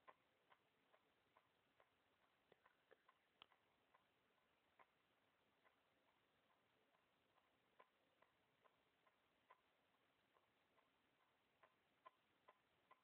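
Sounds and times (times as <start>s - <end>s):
faint regular ticking: 0.0s - 13.0s.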